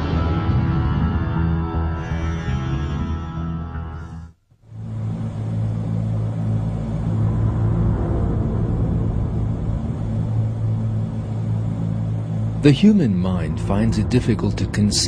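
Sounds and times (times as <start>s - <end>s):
low rumbling drone: 0.0s - 15.0s.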